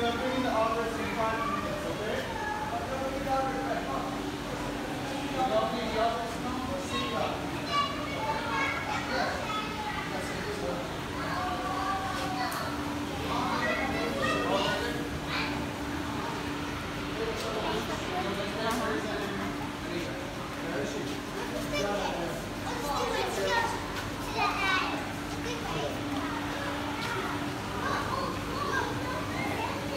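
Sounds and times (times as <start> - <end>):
children talking and calling out: 0.0 - 29.9
crowd chatter: 0.0 - 29.9.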